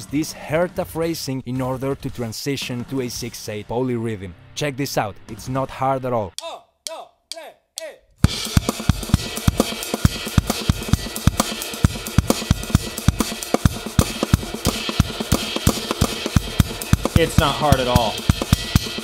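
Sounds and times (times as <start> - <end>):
fast drum kit groove: 8.2 - 19.0.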